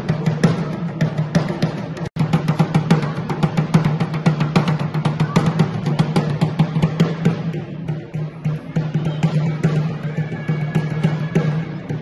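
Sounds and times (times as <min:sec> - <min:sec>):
barrel drum beaten with sticks: 0:00.0 - 0:12.0.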